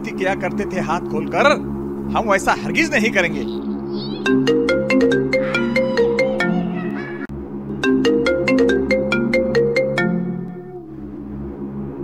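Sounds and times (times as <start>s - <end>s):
mobile phone ringtone: 4.1s - 6.8s.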